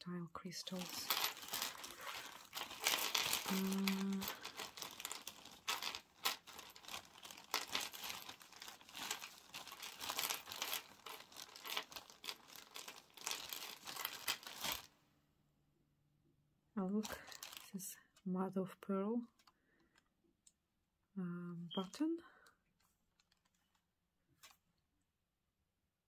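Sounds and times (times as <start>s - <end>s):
hands rummaging through beads: 0.5s - 14.9s, 17.0s - 17.8s.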